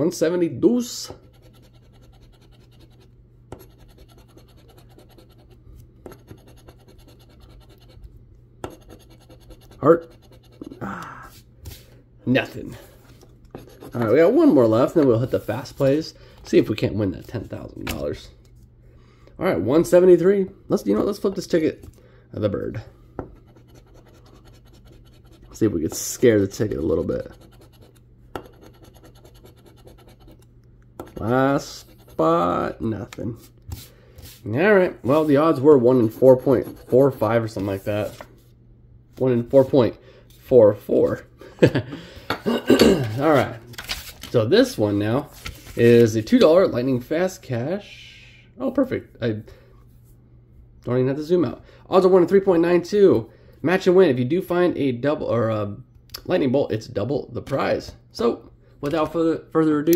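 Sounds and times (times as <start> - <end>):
coin scratching lottery ticket: 1.2 - 5.5, 6.1 - 8.0, 8.7 - 10.8, 26.7 - 30.4.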